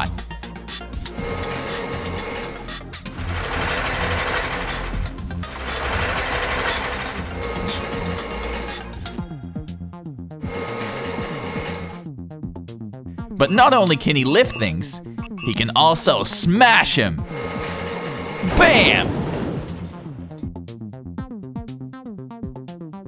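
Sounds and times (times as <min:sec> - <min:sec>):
crane winch whirring and ratcheting: 0:00.0 - 0:09.4, 0:10.4 - 0:12.0, 0:13.4 - 0:15.7, 0:17.2 - 0:19.1
background music with steady beat: 0:00.0 - 0:18.6.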